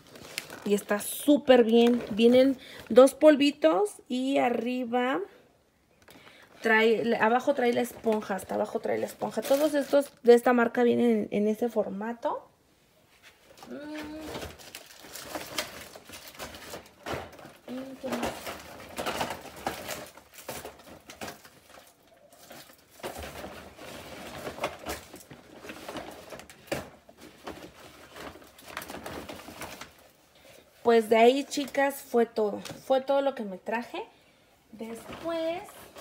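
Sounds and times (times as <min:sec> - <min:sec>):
plastic packaging rustling and clicking: 0:00.0 - 0:03.6, 0:05.9 - 0:10.6, 0:13.2 - 0:33.1, 0:34.8 - 0:36.0
quiet vocal sounds: 0:13.6 - 0:14.4.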